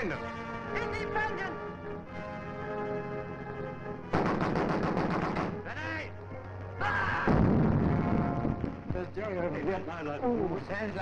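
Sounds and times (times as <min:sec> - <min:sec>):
held orchestral chord: 0:00.0 - 0:04.2
heavy gun blast: 0:04.1 - 0:05.6
rapid gunfire: 0:04.1 - 0:05.6.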